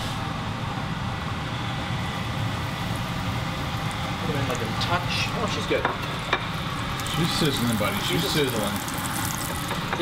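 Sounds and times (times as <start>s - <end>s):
range hood fan humming: 0.0s - 10.0s
food frying in pans: 2.5s - 10.0s.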